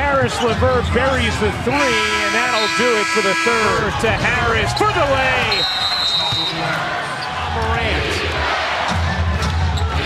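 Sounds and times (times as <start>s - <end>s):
arena crowd noise: 0.0s - 10.0s
music over arena speakers: 7.8s - 10.0s.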